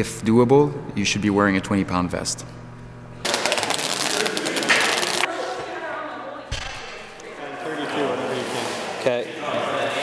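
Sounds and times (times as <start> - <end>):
velcro strap ripping: 3.2 - 5.3.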